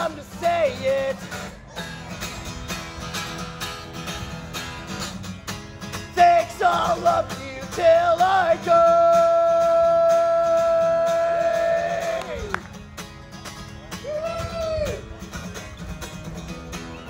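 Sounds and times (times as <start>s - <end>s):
man singing: 0.0s - 1.7s, 6.1s - 12.5s
acoustic guitar strumming: 0.0s - 17.0s.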